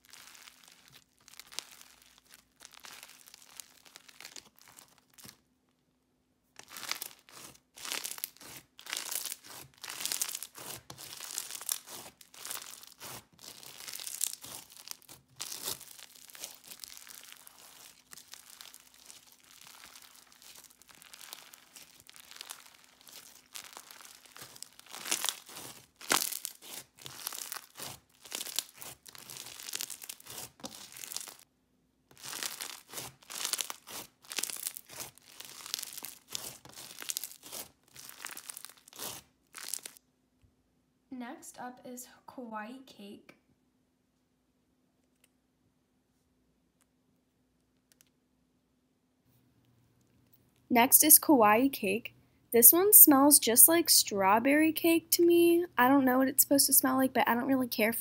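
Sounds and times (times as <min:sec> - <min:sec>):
crunchy slime crackling: 0:00.0 - 0:05.4, 0:06.6 - 0:31.5, 0:32.1 - 0:40.0.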